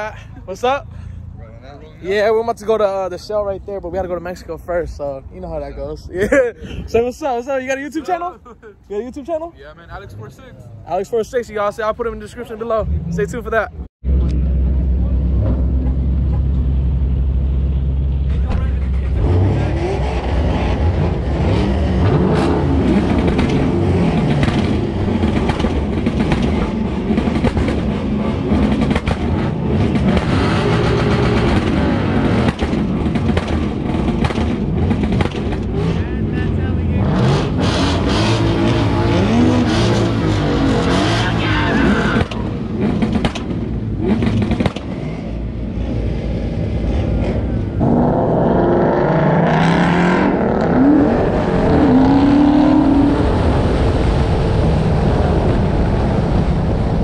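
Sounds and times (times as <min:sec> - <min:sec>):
car engines revving: 0:00.0 - 0:57.0
car accelerating: 0:12.6 - 0:57.0.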